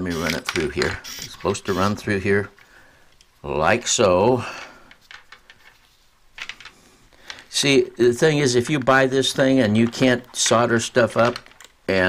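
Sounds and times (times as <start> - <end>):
soft clicks and rustles: 4.5 - 7.7, 8.4 - 12.0.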